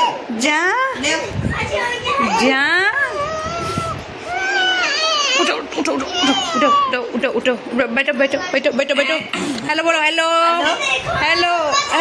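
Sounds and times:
children calling out and squealing: 0:01.4 - 0:07.0, 0:10.7 - 0:12.0.

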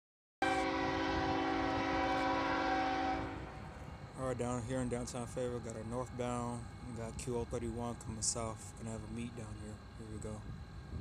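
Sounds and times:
locomotive air horn blast: 0:00.4 - 0:03.8.

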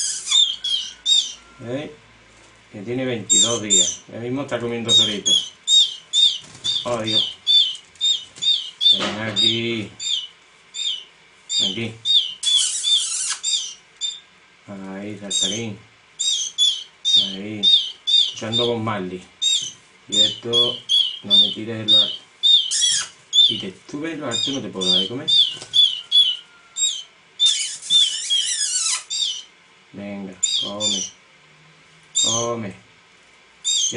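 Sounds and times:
canary chick chirping: 0:00.0 - 0:02.0, 0:02.8 - 0:14.4, 0:15.1 - 0:31.3, 0:32.0 - 0:32.7, 0:33.6 - 0:33.9.

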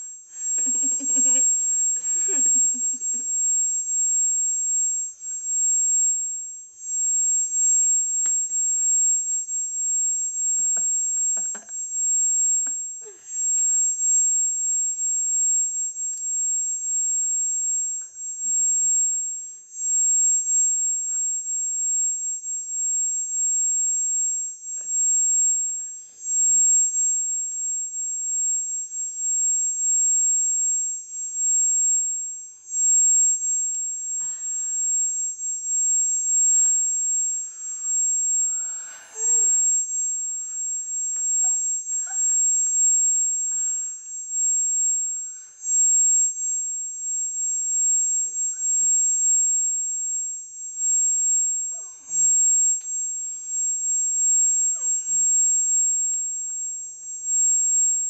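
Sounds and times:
high-pitched electronic whine: 0:00.0 - 0:58.0.

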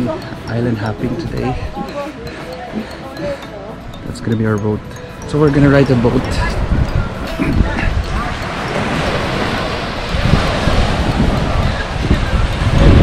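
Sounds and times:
wind buffeting microphone: 0:03.8 - 0:13.0
surf breaking on shore: 0:05.9 - 0:13.0.

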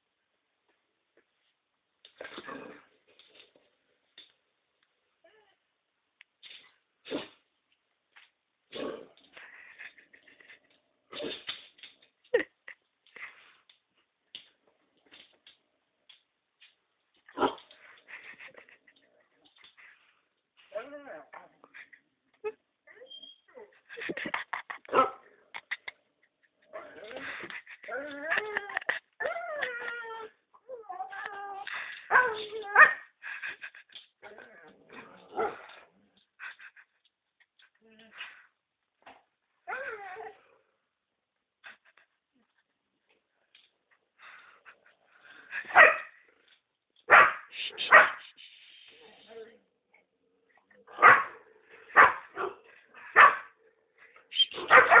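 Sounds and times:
dogs barking: 0:45.7 - 0:46.1, 0:47.1 - 0:48.2, 0:50.9 - 0:53.5, 0:54.5 - 0:55.0.

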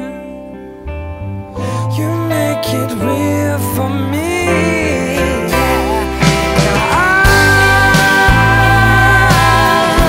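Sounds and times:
pop-soul band music: 0:00.0 - 0:10.0.

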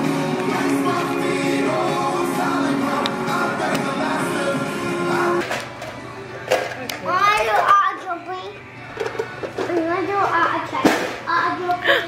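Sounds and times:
background music: 0:00.0 - 0:12.0
child's high-pitched vocal sounds: 0:11.3 - 0:12.0.

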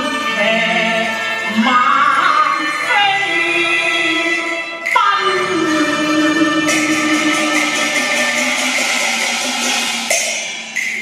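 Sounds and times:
instrumental opera ensemble: 0:00.0 - 0:09.7
sharp percussion strikes: 0:06.5 - 0:11.0.

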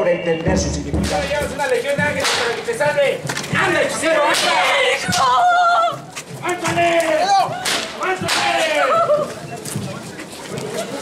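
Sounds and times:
voices calling out: 0:00.0 - 0:11.0
whip cracks: 0:02.2 - 0:02.6, 0:07.6 - 0:08.6.

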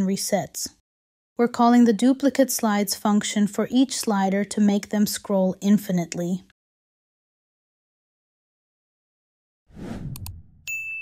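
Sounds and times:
short whoosh: 0:09.7 - 0:10.6
mouse clicks: 0:10.1 - 0:10.4
high bell ding: 0:10.7 - 0:11.0.

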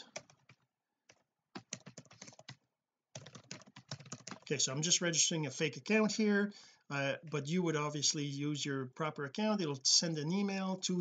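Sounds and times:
typing on computer keyboard: 0:00.0 - 0:04.6.

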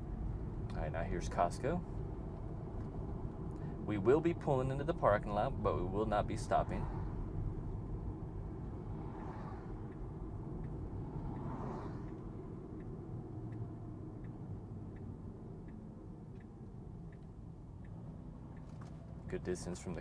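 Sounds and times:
road and tyre noise: 0:00.0 - 0:20.0
turn signal ticking: 0:00.0 - 0:20.0.

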